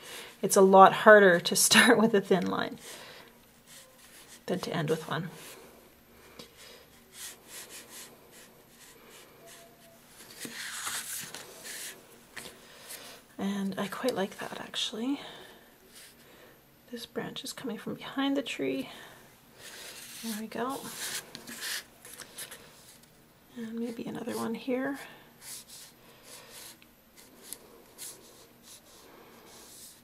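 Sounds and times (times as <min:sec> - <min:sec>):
brush swishing across paper: 0:19.6 - 0:23.0, 0:25.4 - 0:30.0.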